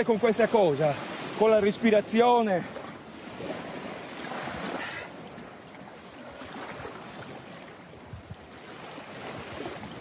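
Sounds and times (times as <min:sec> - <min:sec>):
small waves washing onto sand: 0:00.0 - 0:10.0
wind buffeting microphone: 0:00.0 - 0:10.0.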